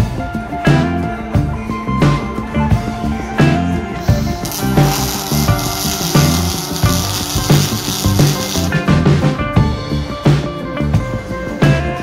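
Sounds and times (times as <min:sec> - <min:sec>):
rock music with guitar: 0:00.0 - 0:12.0
welding arc hissing crackle: 0:04.0 - 0:08.8.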